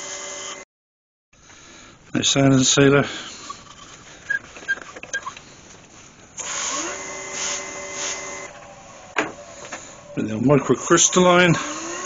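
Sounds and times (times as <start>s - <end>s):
lathe motor whine: 0.0s - 0.6s, 6.4s - 12.0s
cloth rubbing hiss: 5.5s - 10.2s.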